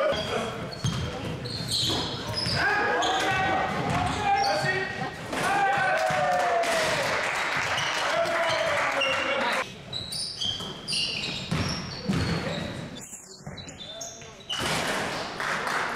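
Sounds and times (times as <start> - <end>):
sneakers squeaking on floor: 0.0 - 5.3, 7.6 - 15.3
players shouting: 2.5 - 9.6
basketball bouncing on hardwood floor: 11.5 - 12.5.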